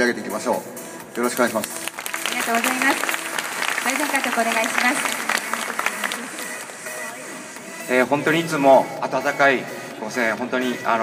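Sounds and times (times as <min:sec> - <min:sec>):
audience applauding: 0:01.3 - 0:07.0.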